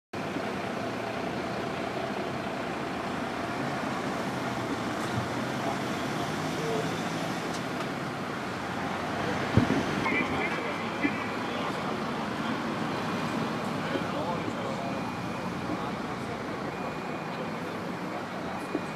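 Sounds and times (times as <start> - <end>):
motorway traffic noise: 0.2 - 18.9
faint voices: 8.5 - 18.9.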